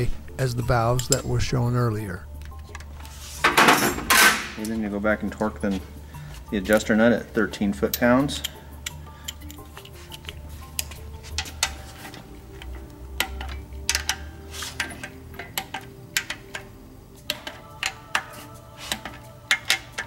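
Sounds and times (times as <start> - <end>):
quiet background music: 0.0 - 20.0
wrench metallic clicks: 0.6 - 1.4, 7.8 - 20.0.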